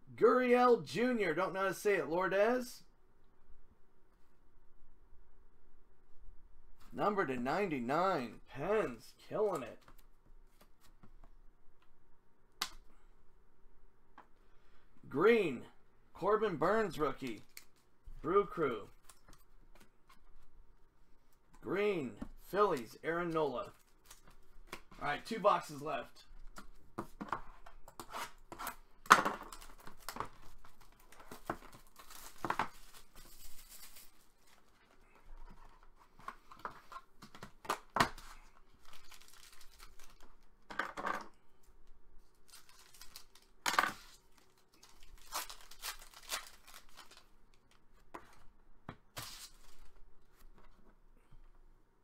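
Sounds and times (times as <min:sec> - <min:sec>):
plastic shrink wrap ripping: 0:38.8 - 0:40.4, 0:44.4 - 0:47.3.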